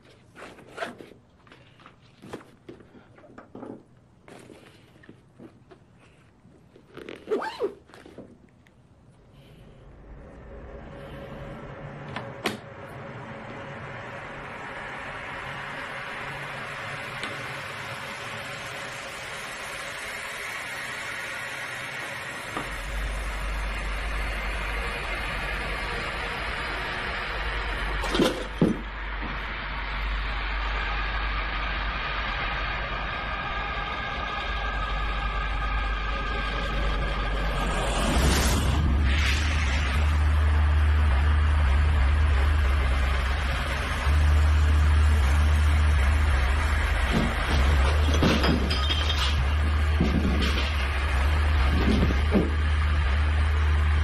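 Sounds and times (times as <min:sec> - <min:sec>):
low droning rumble: 0:08.7 - 0:54.0.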